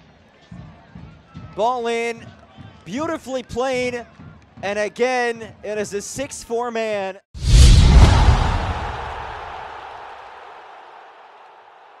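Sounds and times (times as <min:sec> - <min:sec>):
deep boom: 0:07.4 - 0:09.7.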